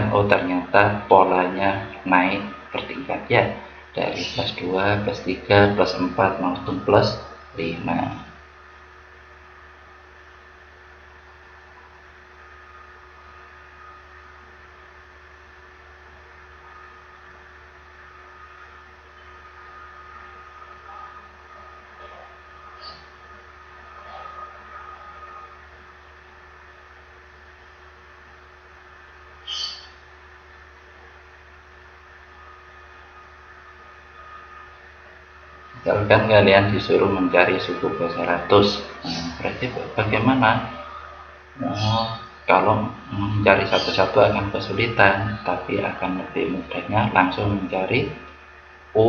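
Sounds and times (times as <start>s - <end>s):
electrical hum and hiss: 0.0s - 49.0s
faint constant tones: 0.0s - 49.0s
even hiss: 35.8s - 48.2s.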